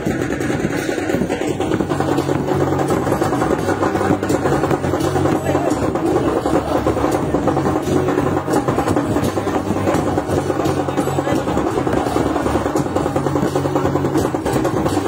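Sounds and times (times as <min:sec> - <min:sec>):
barrel drums beaten: 0:00.0 - 0:15.0.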